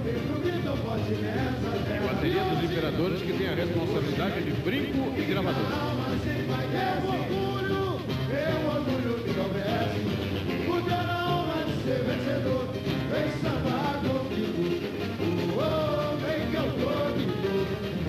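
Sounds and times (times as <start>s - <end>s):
person singing: 0.0s - 18.0s.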